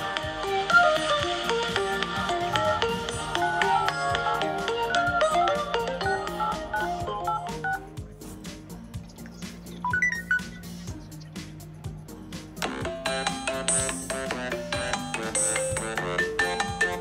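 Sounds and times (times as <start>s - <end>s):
phone ringtone melody: 0.0s - 7.9s, 9.9s - 10.5s, 12.6s - 17.0s
phone dial pad touch-tone beeps: 6.1s - 7.9s, 9.9s - 10.5s.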